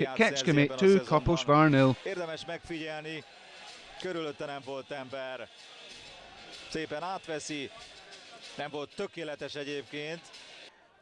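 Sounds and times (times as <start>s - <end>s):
stadium noise: 0.0s - 11.0s.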